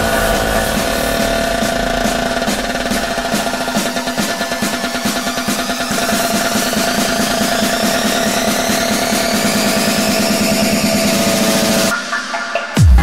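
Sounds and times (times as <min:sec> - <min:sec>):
rapid pulsing: 0:00.0 - 0:11.9
rising synth sweep: 0:00.0 - 0:11.9.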